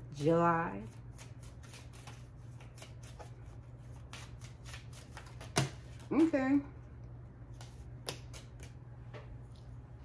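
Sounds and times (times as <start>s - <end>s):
cards being shuffled: 1.2s - 6.1s.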